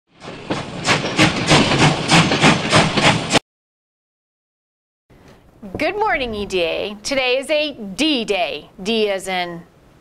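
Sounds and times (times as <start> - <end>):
steam locomotive chuffing: 0.1 - 3.4.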